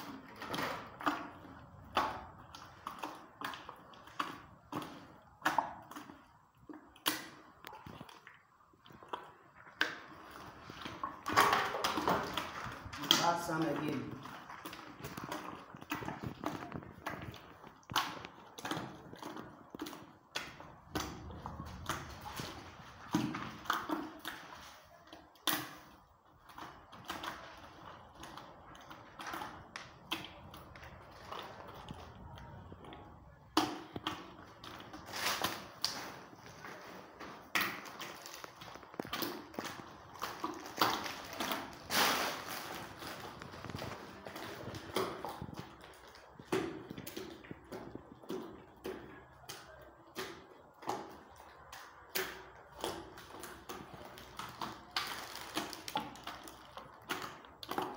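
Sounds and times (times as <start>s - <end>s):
filler stirred in plastic bucket: 0.0s - 57.9s.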